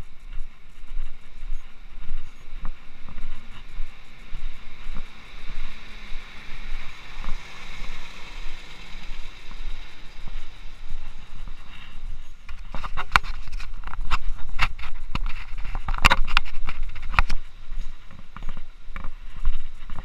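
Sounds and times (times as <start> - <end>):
low street ambience: 0.0 - 20.0.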